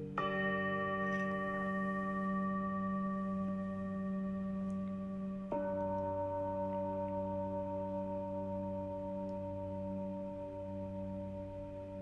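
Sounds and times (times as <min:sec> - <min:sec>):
singing bowl tone: 0:00.0 - 0:12.0.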